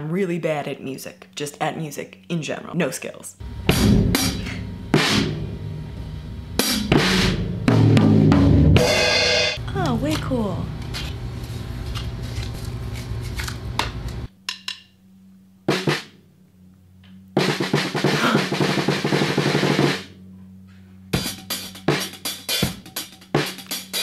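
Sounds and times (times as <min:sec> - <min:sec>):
drum kit hits: 0:03.5 - 0:09.6, 0:21.2 - 0:24.0
fast drum roll: 0:03.6 - 0:10.0, 0:15.7 - 0:16.1, 0:17.4 - 0:20.1, 0:21.2 - 0:24.0.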